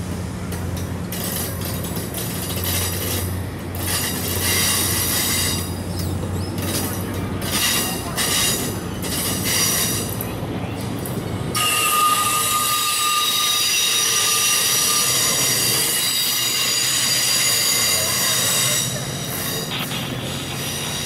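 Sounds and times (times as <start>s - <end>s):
train cars rolling past: 0.0s - 21.0s
wheels squealing: 0.7s - 21.0s.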